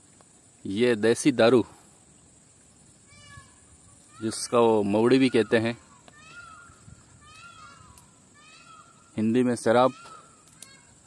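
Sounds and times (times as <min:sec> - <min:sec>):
animal or bird calling: 0:03.0 - 0:11.0.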